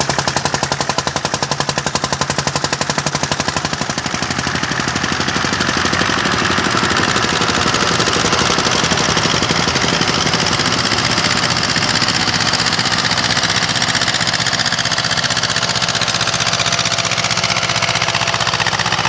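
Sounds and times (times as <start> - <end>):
tractor diesel engine chugging: 0.0 - 19.0.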